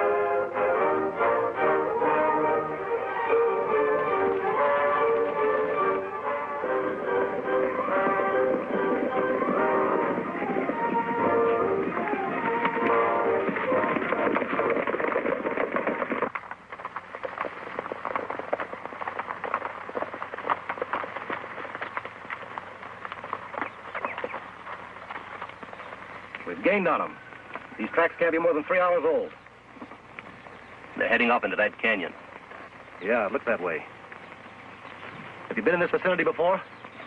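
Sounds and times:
dramatic orchestral music: 0:00.0 - 0:13.8
galloping horse hoofbeats: 0:00.0 - 0:37.0.

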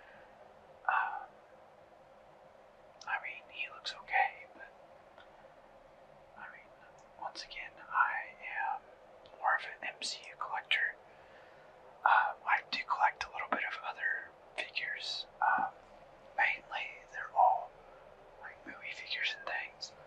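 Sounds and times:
person whispering: 0:00.9 - 0:01.3, 0:03.0 - 0:04.7, 0:06.4 - 0:08.8, 0:09.4 - 0:11.0, 0:12.0 - 0:15.8, 0:16.4 - 0:17.7, 0:18.4 - 0:20.0.

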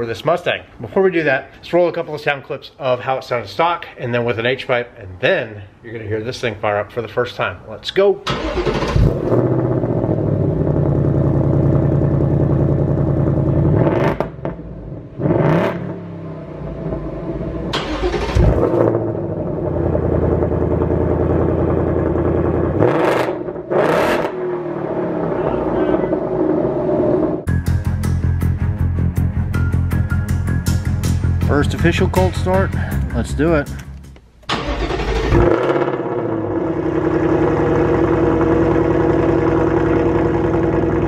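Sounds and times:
engine cold start and idling: 0:08.2 - 0:13.5, 0:17.7 - 0:22.7, 0:33.8 - 0:41.0
music with a beat: 0:27.5 - 0:34.2.

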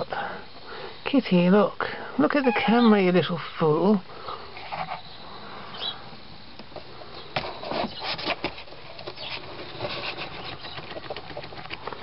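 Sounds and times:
cat rustling in cardboard box: 0:07.4 - 0:12.0.

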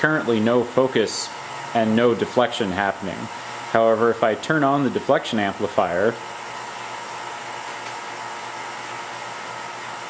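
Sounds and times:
vacuum pumps whirring: 0:00.0 - 0:10.0.

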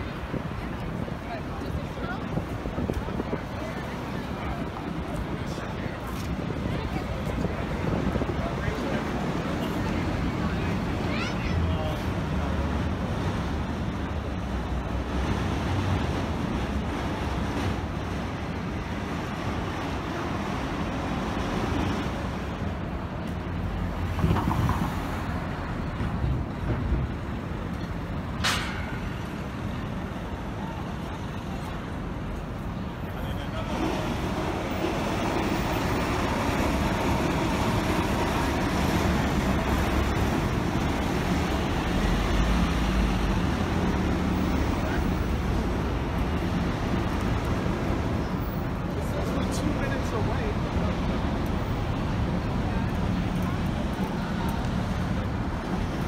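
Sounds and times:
pedestrians chattering: 0:00.0 - 0:56.0
traffic: 0:00.0 - 0:56.0.

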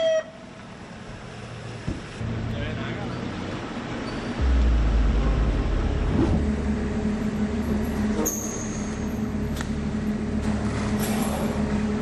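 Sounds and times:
van engine running: 0:03.6 - 0:12.0
high thin whine: 0:04.4 - 0:07.8.

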